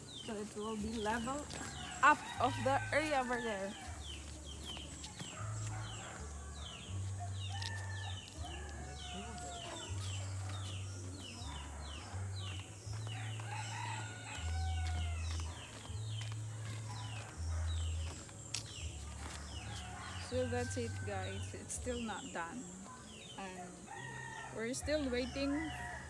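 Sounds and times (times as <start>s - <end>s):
rooster crowing: 5.8s - 10.4s, 13.1s - 15.5s.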